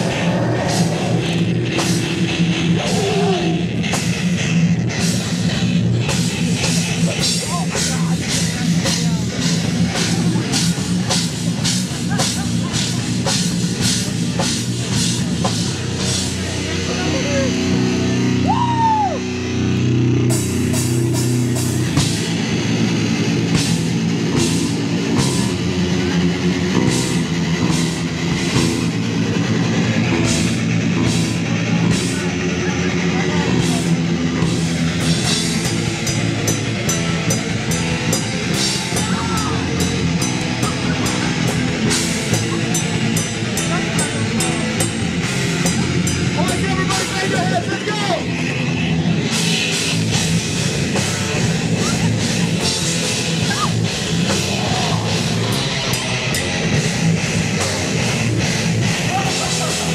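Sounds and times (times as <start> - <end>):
live metal band playing: 0.0 - 59.9.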